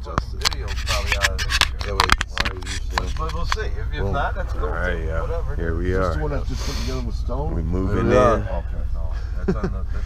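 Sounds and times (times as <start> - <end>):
person speaking: 0.0 - 5.1
low rumble inside van: 0.0 - 10.0
fingers rubbing camera body: 0.4 - 3.6.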